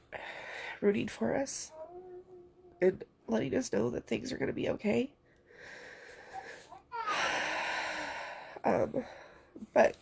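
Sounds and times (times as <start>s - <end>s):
woman crying breath: 5.6s - 8.6s
woman whimpering: 6.3s - 8.5s.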